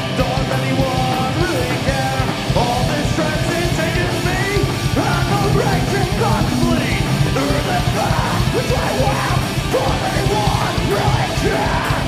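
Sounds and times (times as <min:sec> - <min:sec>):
distorted electric guitar: 0:00.0 - 0:12.0
drum kit: 0:00.0 - 0:12.0
shouted vocals: 0:05.0 - 0:12.0.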